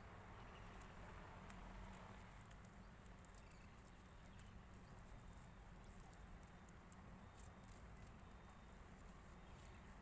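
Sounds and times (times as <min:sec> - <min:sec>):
faint light clicks: 0:00.6 - 0:04.6.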